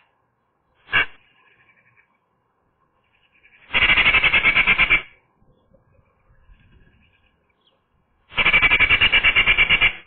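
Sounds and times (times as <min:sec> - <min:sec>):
magpie chattering rattle: 0:03.4 - 0:05.1, 0:08.3 - 0:10.0.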